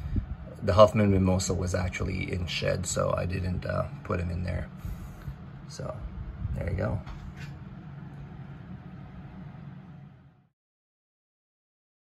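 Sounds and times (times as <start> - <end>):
low room hum: 0.0 - 10.5.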